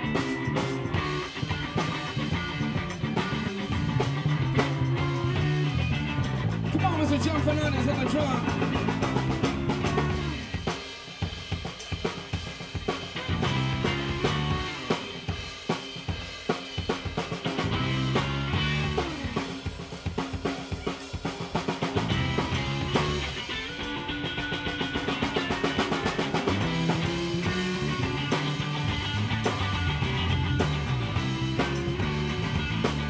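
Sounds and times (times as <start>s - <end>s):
live rock band playing: 0.0s - 33.0s.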